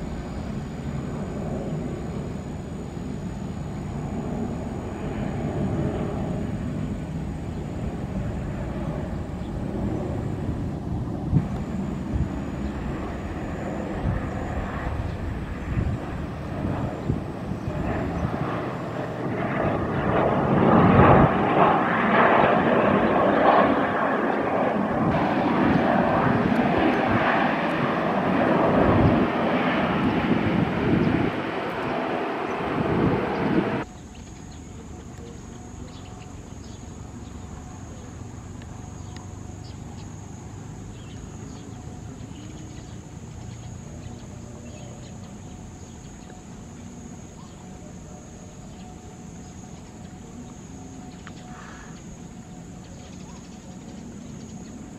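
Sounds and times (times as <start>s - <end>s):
jet engines of landing airliner: 0.0s - 54.9s.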